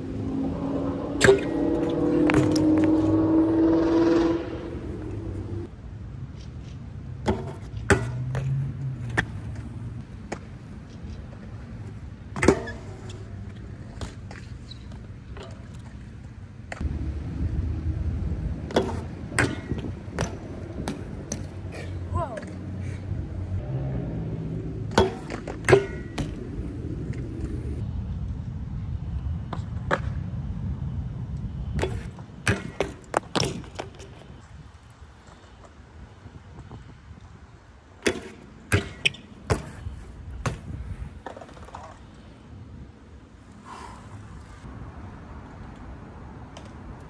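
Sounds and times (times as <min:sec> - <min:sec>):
bike tyre rumble on concrete: 0:00.0 - 0:44.7.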